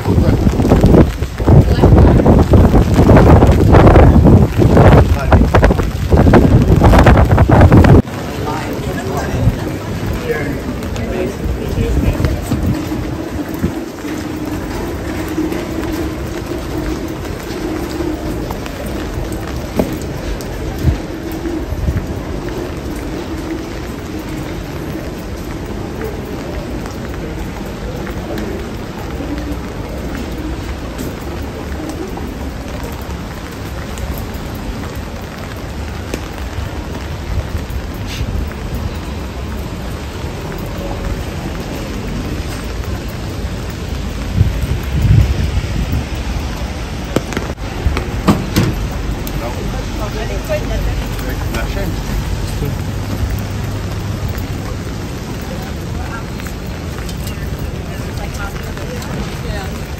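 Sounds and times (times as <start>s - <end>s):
low rumble: 0.0s - 59.9s
rain on a wet street: 0.0s - 59.9s.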